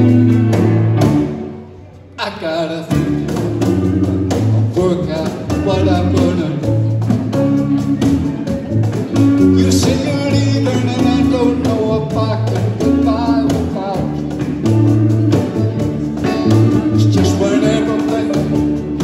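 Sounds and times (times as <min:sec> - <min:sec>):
blues band playing: 0:00.0 - 0:19.0
man singing: 0:02.1 - 0:07.6, 0:09.2 - 0:19.0.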